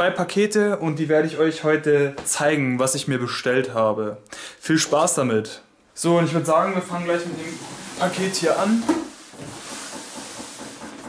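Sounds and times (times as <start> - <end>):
cardboard box scraping across floor: 7.0 - 11.0.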